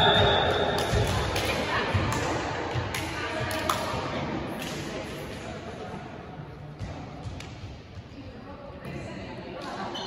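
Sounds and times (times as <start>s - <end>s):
players' voices echoing: 0.0s - 10.0s.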